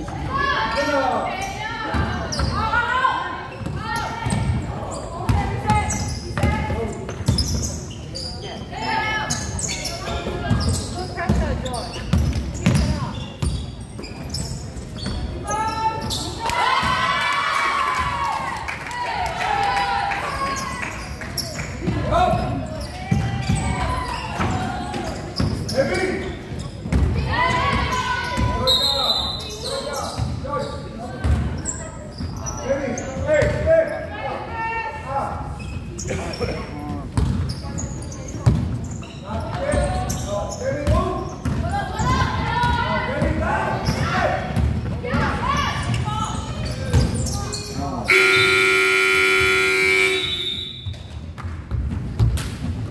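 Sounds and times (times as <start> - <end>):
basketball bouncing: 40.9 - 41.7
players calling: 47.2 - 50.8
scoreboard buzzer: 48.1 - 50.7.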